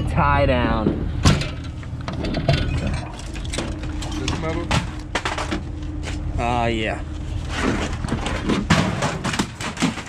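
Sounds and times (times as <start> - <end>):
metal junk rattling in truck bed: 1.2 - 5.7, 7.5 - 10.0.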